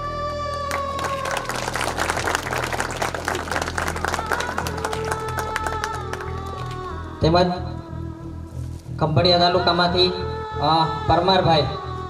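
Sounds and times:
background music with held notes: 0:00.0 - 0:12.0
audience clapping: 0:00.5 - 0:06.9.

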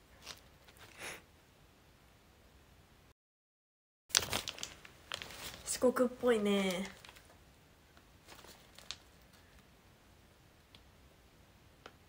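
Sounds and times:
plastic pouch clicks: 0:04.1 - 0:05.3.

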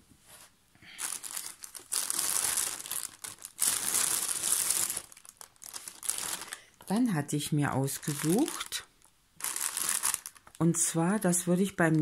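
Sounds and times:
plastic bag crinkling: 0:00.9 - 0:07.0, 0:07.8 - 0:12.0.

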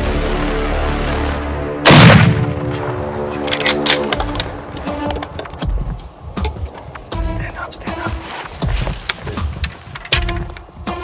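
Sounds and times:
background music: 0:00.0 - 0:11.0
rifle shot: 0:01.8 - 0:02.7.

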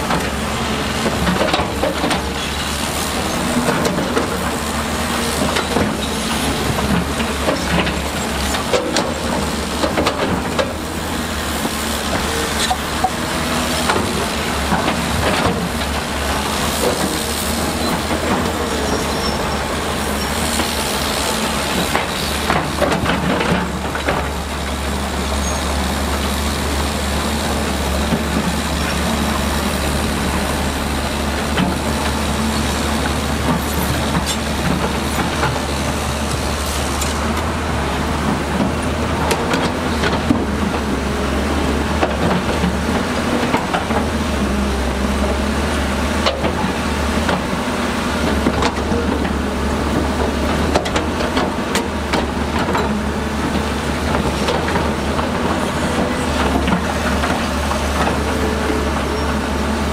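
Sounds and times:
heavy diesel machinery droning: 0:00.0 - 0:59.9
steel tracks clanking: 0:00.0 - 0:59.9.

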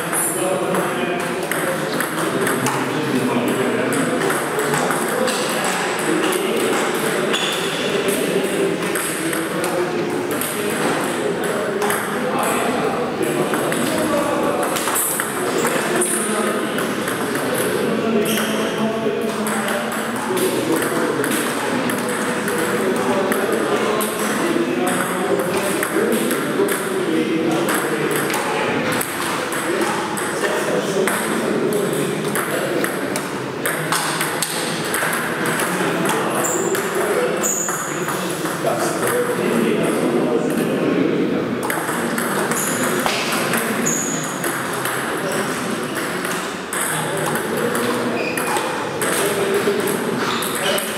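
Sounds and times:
ping pong ball on paddles: 0:00.0 - 0:40.9, 0:41.6 - 0:50.9
ping pong ball bouncing on table: 0:00.1 - 0:39.4, 0:41.6 - 0:50.9.

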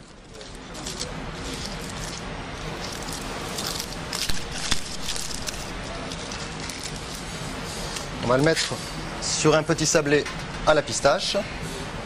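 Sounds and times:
aluminium foil crinkling: 0:00.0 - 0:07.3.

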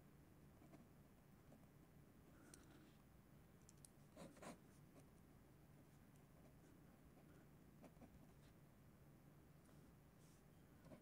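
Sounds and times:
faint scratches and clicks: 0:03.6 - 0:05.1.

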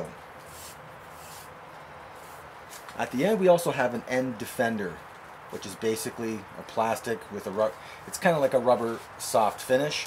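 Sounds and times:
open-air ambience hiss: 0:00.0 - 0:10.0.

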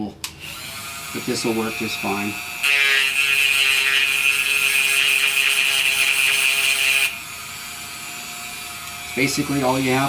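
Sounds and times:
rotary tool grinding metal: 0:00.4 - 0:10.0.

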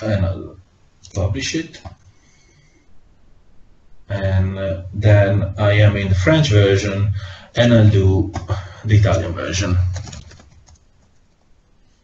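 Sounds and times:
faint microphone line noise: 0:00.0 - 0:12.0.

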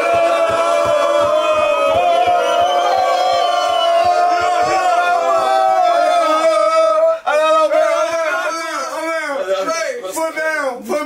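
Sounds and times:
men yelling in celebration: 0:00.0 - 0:09.7.

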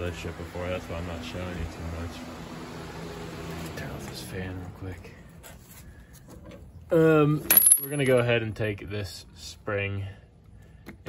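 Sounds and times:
electric fan humming: 0:00.0 - 0:05.4.

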